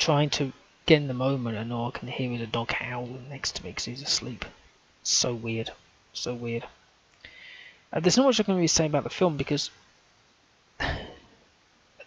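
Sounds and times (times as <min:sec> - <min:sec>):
man clearing his throat: 0:10.8 - 0:11.3.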